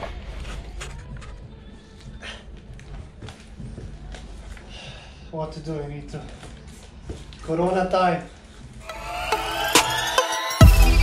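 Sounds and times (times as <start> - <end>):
background music: 8.8 - 11.0.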